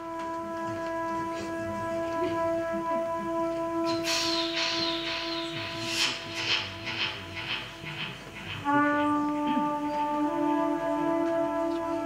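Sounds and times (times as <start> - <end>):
trumpet long steady note: 0.0 - 7.4, 8.5 - 12.0
hissing noise: 3.9 - 9.2.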